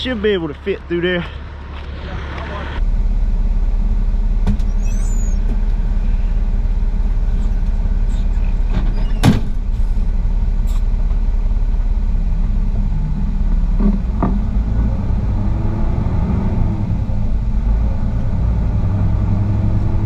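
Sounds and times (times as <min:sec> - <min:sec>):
diesel truck engine rumbling: 0:00.0 - 0:20.0.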